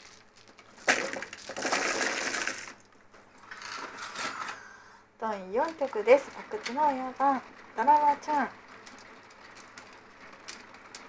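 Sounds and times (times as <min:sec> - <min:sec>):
mahjong tiles clicking: 0:05.6 - 0:11.0.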